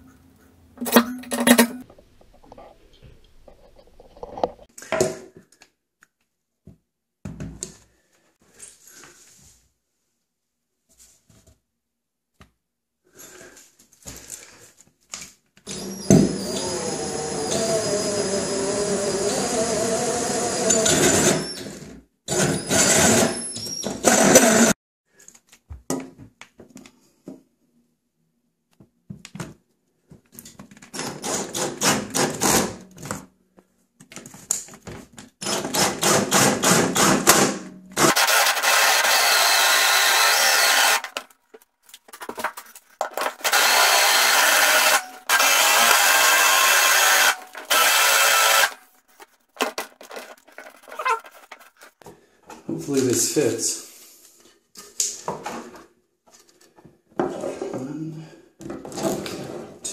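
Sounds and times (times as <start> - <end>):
drill bit boring into wood: 15.7 - 24.7, 38.0 - 41.2, 43.3 - 48.8
hole saw grinding plastic: 15.7 - 24.7, 38.0 - 41.3, 42.2 - 52.0.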